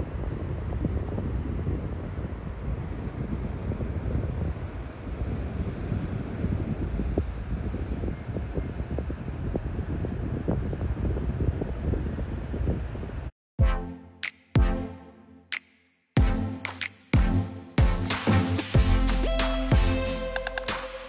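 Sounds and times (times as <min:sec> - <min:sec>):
wind buffeting microphone: 0:00.0 - 0:13.3.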